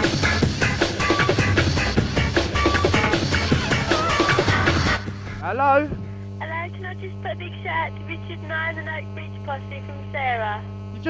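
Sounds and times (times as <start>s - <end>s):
low mains hum: 5.0s - 11.0s
person talking over telephone: 6.4s - 11.0s.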